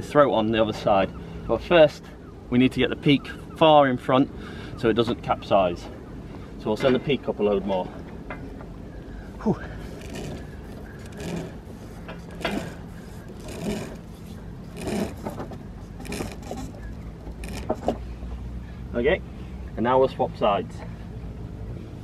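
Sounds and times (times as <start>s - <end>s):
effortful breathing: 4.3s - 4.8s, 9.0s - 17.7s
rope hauled through blocks: 9.8s - 18.0s.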